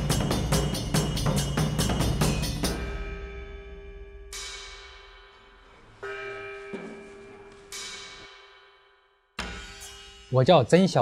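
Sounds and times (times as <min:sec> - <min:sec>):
bell-like struck tones: 0:00.0 - 0:11.0.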